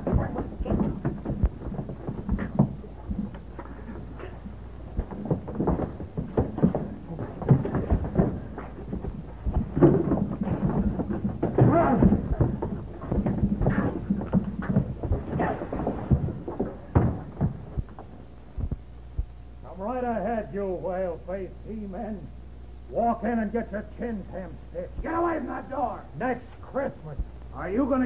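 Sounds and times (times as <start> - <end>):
thuds of blows and bodies: 0.0 - 19.4.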